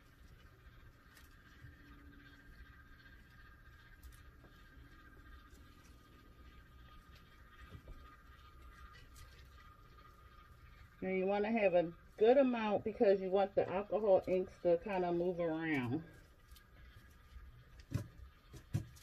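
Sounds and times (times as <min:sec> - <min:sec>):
faint high hum: 0:00.0 - 0:19.0.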